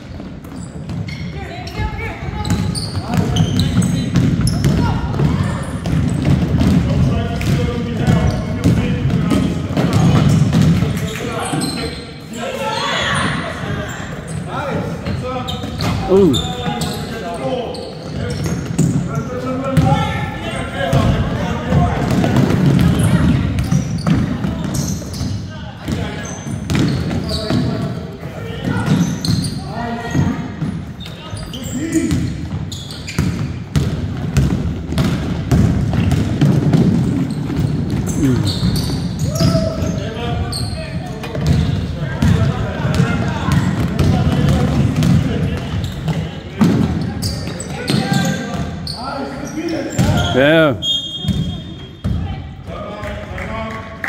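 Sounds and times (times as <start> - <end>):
basketball bouncing on hardwood: 33.2 - 38.0, 41.3 - 45.3.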